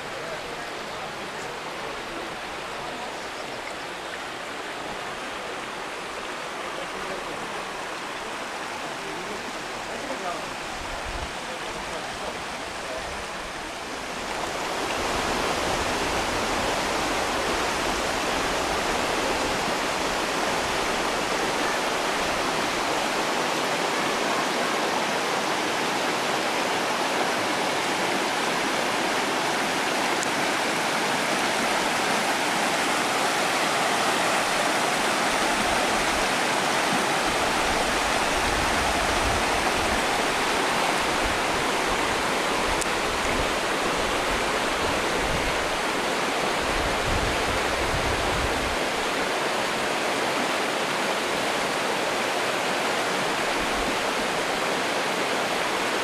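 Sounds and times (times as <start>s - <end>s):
river rushing over stones: 0.0s - 56.0s.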